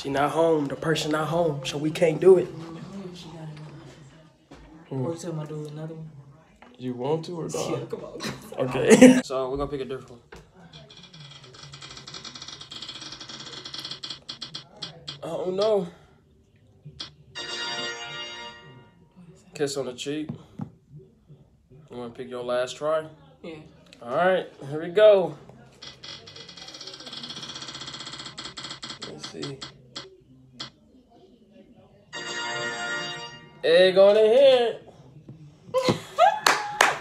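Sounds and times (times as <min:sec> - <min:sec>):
rapid ticking of spinning wheel app: 0:10.7 - 0:15.8, 0:25.8 - 0:30.7.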